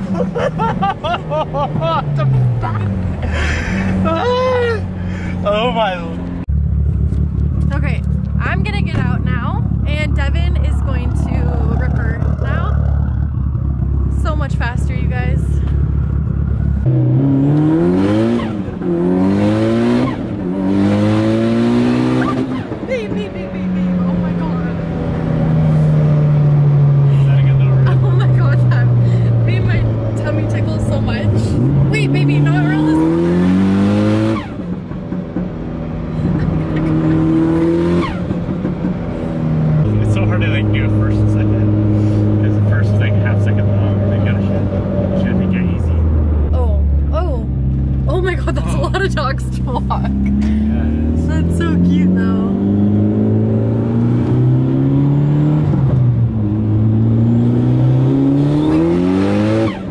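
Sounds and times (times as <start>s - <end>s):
car engine accelerating: 0.0s - 59.9s.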